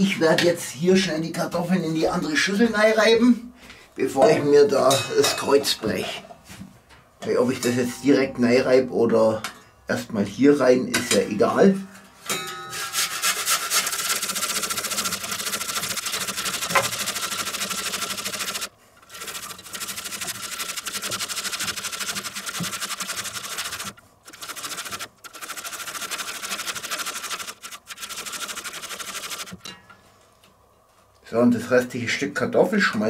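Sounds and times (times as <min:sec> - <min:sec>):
potato grating on metal grater: 0:13.0 - 0:29.6.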